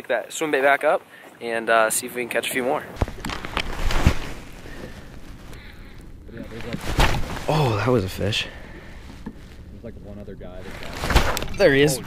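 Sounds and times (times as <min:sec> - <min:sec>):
clothing rustling: 0:02.9 - 0:12.0
clothing knocking against microphone: 0:06.6 - 0:07.5.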